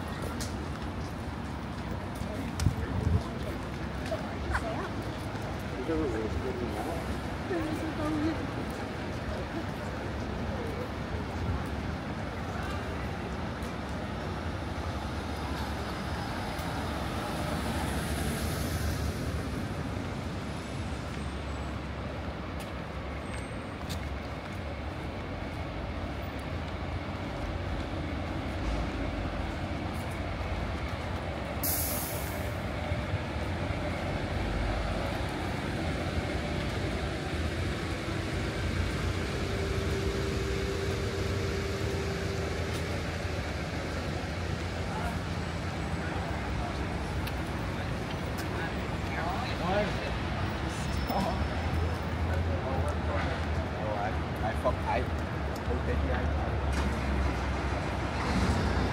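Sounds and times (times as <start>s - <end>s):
bus engine rumble: 0.0s - 58.9s
air brakes hissing: 31.6s - 32.7s.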